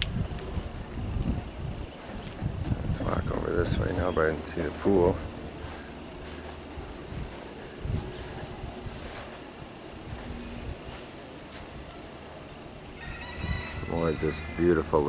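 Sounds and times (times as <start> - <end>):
wind on microphone: 0.0 - 12.2, 12.9 - 15.0
steady high-pitched tone: 12.9 - 15.0.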